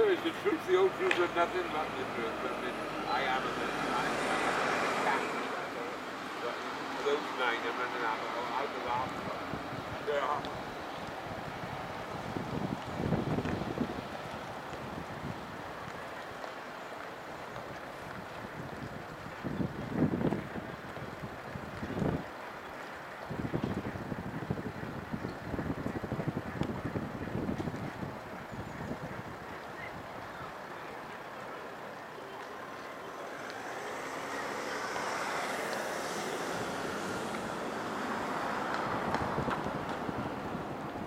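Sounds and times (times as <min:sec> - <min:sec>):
outdoor background noise: 0:00.0 - 0:41.0
wind buffeting microphone: 0:00.0 - 0:41.0.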